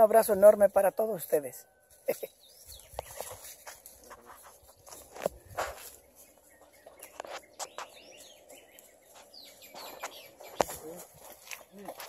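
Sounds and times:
faint bird chirps: 1.4s - 3.8s, 5.7s - 11.9s.

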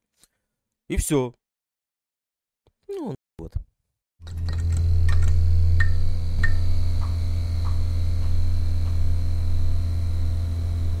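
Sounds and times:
low electrical hum: 4.3s - 11.0s.

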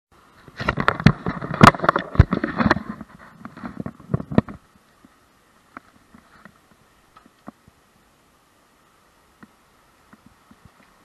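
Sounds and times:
camera handling knocks and rubbing: 0.6s - 4.6s.

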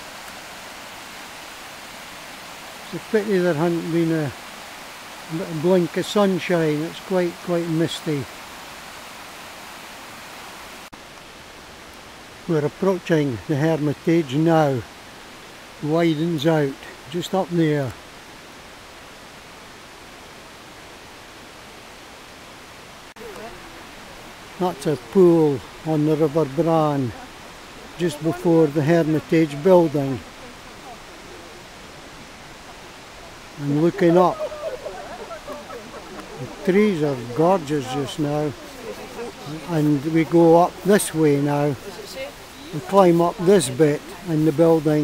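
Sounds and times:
river water rushing: 0.0s - 45.0s.

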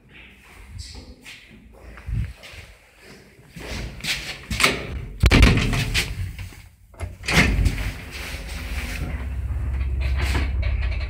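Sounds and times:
lift doors clattering shut: 7.0s - 11.0s.

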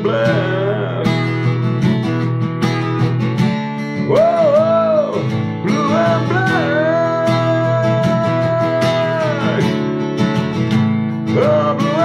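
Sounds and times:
person singing wordless line: 0.0s - 1.5s, 4.0s - 10.0s, 11.2s - 12.0s
acoustic guitar strummed chords: 0.0s - 12.0s.

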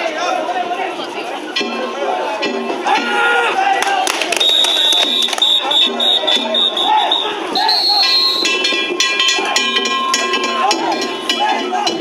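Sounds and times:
people shouting together: 0.0s - 12.0s
hand gongs ringing: 7.8s - 12.0s.

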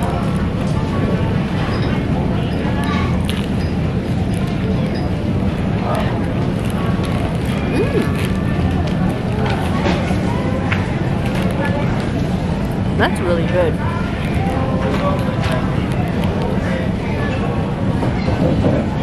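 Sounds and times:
distant indistinct voices: 0.0s - 19.0s
steady low hum: 0.0s - 19.0s.

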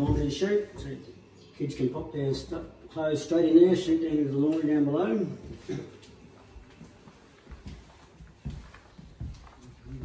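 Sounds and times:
footsteps on timber floor: 5.3s - 10.0s.

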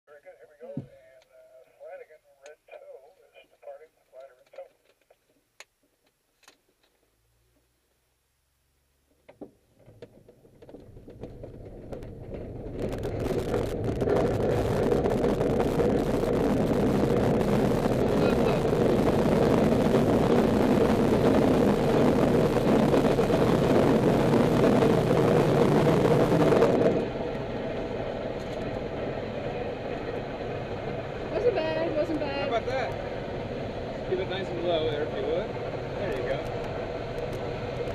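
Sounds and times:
wheel rumbling over hard ground: 9.5s - 37.9s
airflow rushing: 11.5s - 37.9s.

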